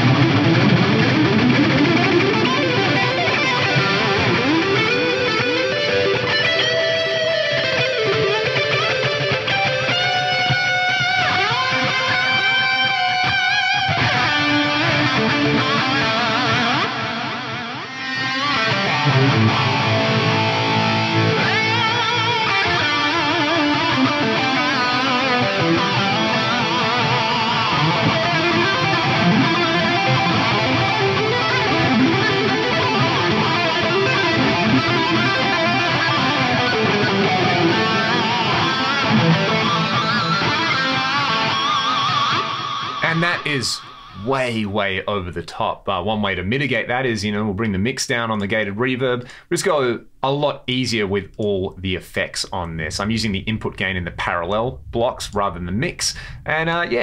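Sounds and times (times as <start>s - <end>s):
heavily effected electric guitar solo: 0.0s - 45.3s, 50.9s - 57.0s.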